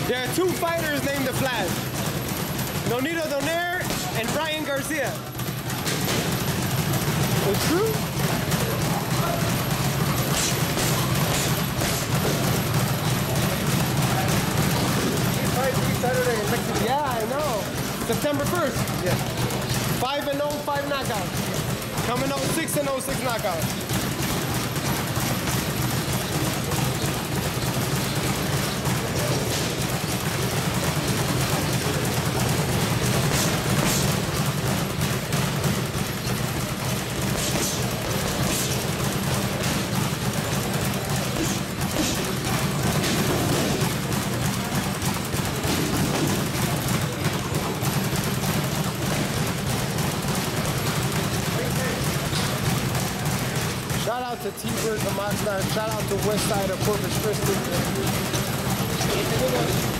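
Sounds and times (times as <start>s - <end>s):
boxing gloves hitting punching bag: 0.0s - 59.9s.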